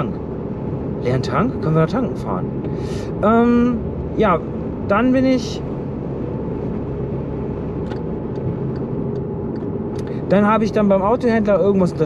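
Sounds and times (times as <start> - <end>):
car cabin road and engine noise: 0.0 - 12.0.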